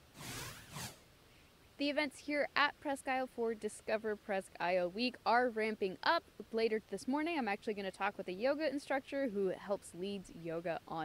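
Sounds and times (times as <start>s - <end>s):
swoosh sound effect: 0.0s - 1.0s
woman speaking: 1.8s - 11.0s.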